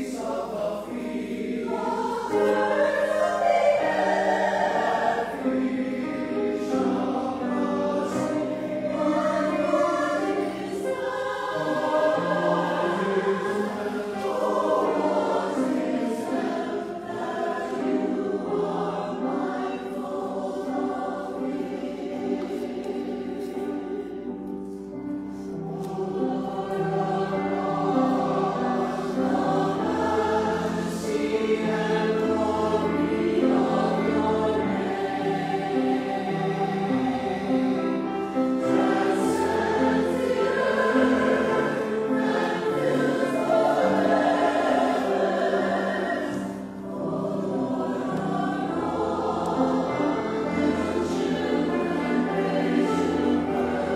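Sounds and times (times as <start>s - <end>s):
church choir singing: 0.0s - 53.9s.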